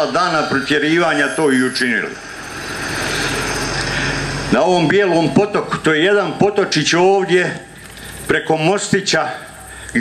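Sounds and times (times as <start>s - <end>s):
steady rushing noise: 0.0s - 10.0s
low hum: 0.4s - 6.0s.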